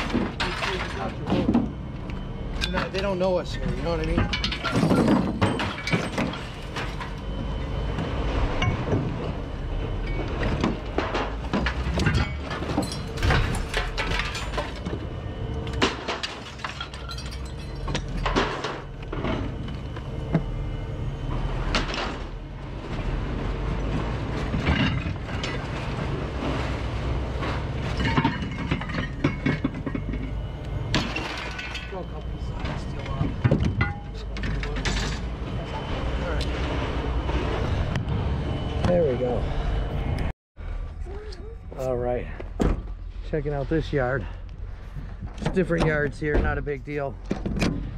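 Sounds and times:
scrap metal clanking and crashing: 0.0 - 1.9, 2.6 - 20.5, 21.3 - 37.9
steady low drone: 0.0 - 47.9.

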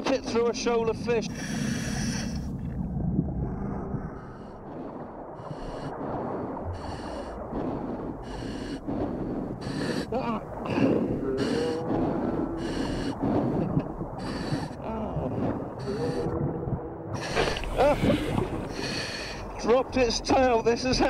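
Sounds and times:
underwater water rumble: 0.0 - 21.0.

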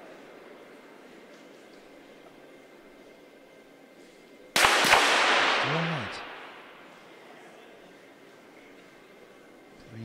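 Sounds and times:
pistol shots: 4.6 - 6.8.

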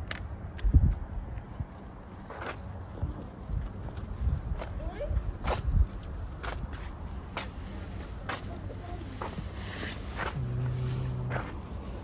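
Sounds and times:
footsteps on pavement: 2.3 - 11.7
low rumble: 10.2 - 12.0.

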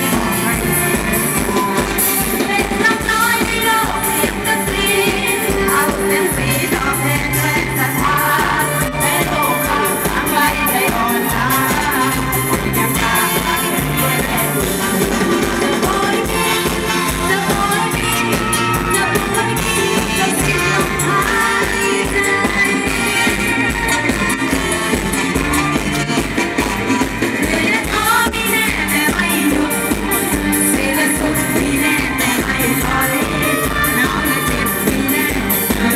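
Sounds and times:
woman singing: 0.0 - 25.9, 27.2 - 35.9
live band drum beat: 0.0 - 35.9.

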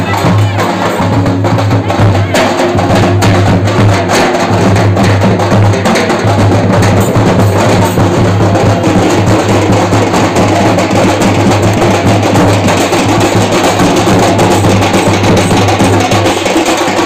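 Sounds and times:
large drums beating: 0.0 - 17.0.

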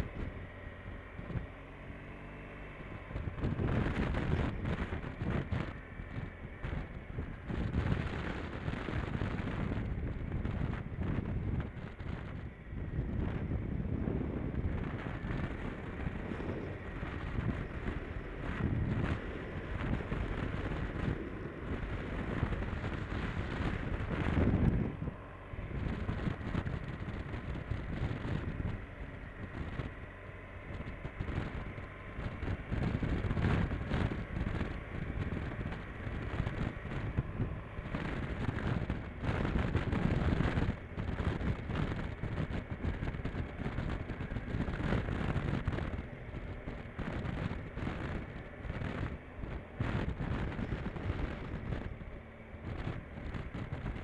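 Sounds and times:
faint steady whine: 0.0 - 54.0
motorcycle running: 0.0 - 54.0
wind buffeting on microphone: 0.0 - 54.0.

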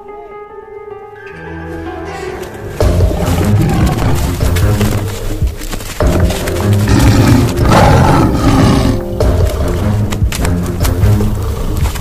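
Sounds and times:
dramatic background music: 0.0 - 12.0
tiger roar: 2.8 - 5.1, 6.7 - 10.2.

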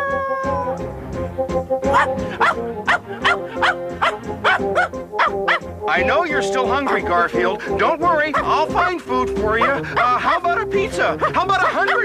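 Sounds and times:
cartoon background music: 0.0 - 12.0
dog yapping: 1.9 - 5.7, 11.2 - 12.0.

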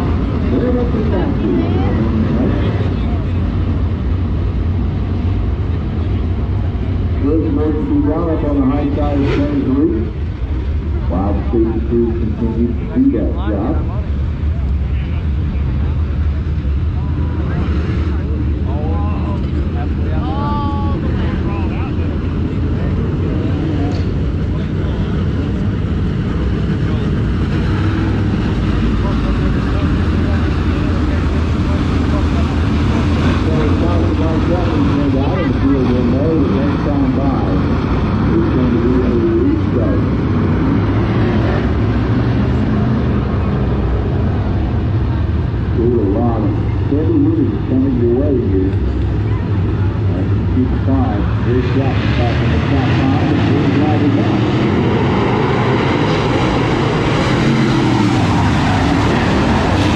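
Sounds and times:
race car engines droning: 0.0 - 59.9.

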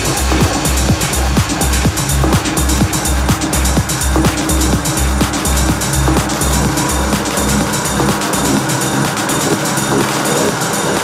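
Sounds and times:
hi-hats: 0.0 - 11.0
pulsing bass note: 0.0 - 11.0
techno kick drum: 0.0 - 11.0.

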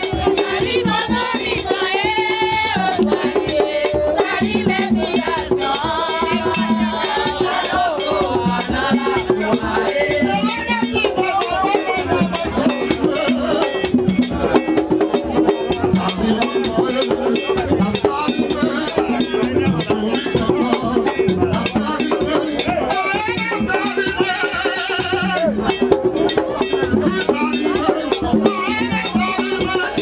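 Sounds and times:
steady drumming: 0.0 - 30.0
voices singing: 0.0 - 30.0.

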